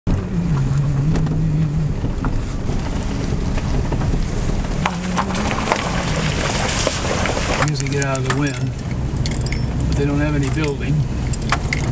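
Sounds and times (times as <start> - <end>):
light rattles and clicks: 0.1 - 11.9
truck engine rumble from cab: 0.1 - 11.9.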